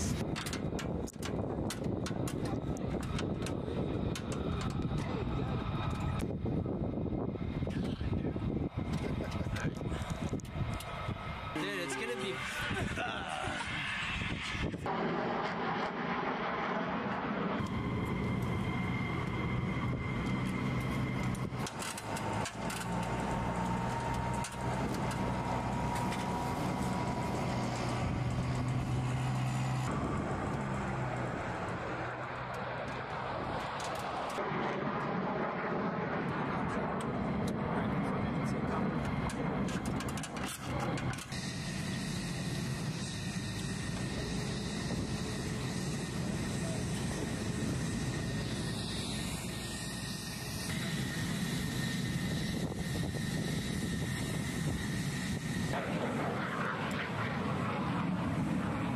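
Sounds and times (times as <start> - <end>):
machinery drone with whines: 0.0 - 58.9.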